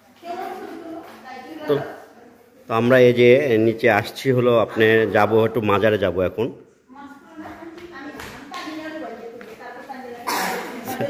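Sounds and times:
people talking in a room: 0.0 - 11.0.

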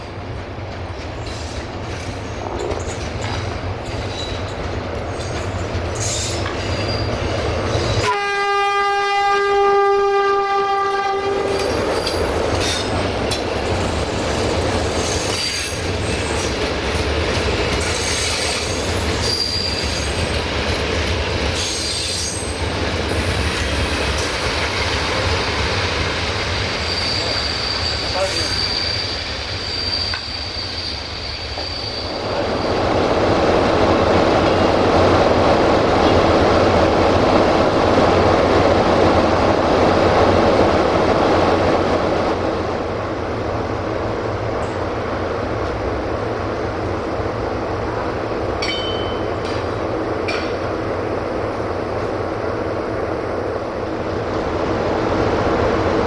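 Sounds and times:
train wheels clicking over rail joints: 0.0 - 8.0, 11.4 - 28.5, 48.5 - 50.8
wheel squeal: 5.2 - 8.0, 17.8 - 20.2, 26.8 - 32.7
locomotive horn blast: 8.0 - 11.6.

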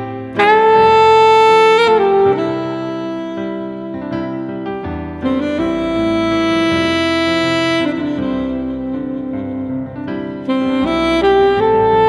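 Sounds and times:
alto saxophone long note: 0.0 - 12.0.

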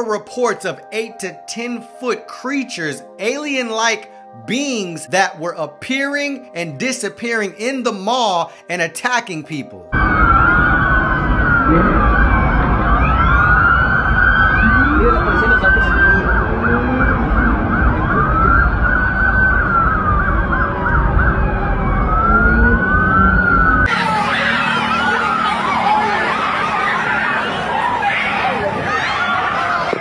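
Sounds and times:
police sirens wailing: 9.9 - 30.0
low rumble: 10.0 - 23.9.

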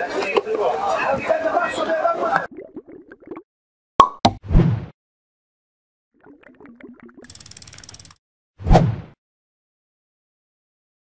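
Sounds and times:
cartoon pop sound effects: 4.0 - 4.5.

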